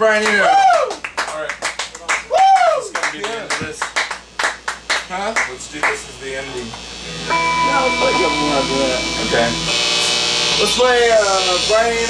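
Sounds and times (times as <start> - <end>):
people talking: 0.0 - 3.9, 5.0 - 6.8, 7.5 - 9.7, 10.5 - 12.0
steady electronic tone: 6.2 - 12.0.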